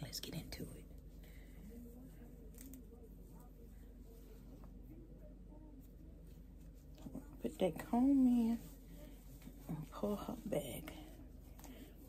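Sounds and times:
wig rustling: 0:00.9 - 0:04.8, 0:05.8 - 0:12.0.

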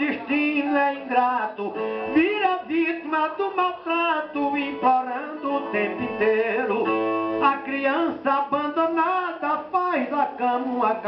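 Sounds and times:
person singing in a high voice: 0:00.0 - 0:11.0.

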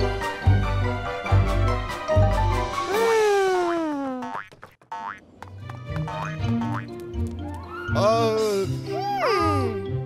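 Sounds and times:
cartoon boing sounds: 0:03.7 - 0:05.2.

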